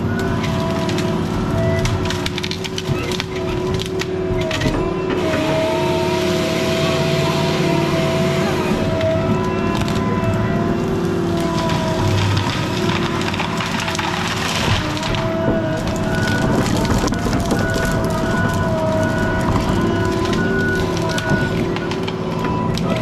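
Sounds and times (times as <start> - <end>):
wood cracking and snapping: 0.0 - 6.4, 7.1 - 23.0
logging machine engine whine: 0.0 - 23.0.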